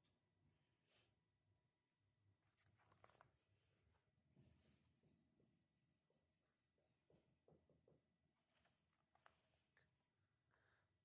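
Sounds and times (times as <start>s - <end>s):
scratching of writing on a board: 4.3s - 8.2s.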